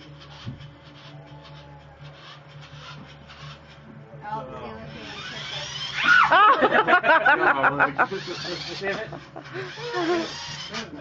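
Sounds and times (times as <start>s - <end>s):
toy car motor whirring: 0.0s - 11.0s.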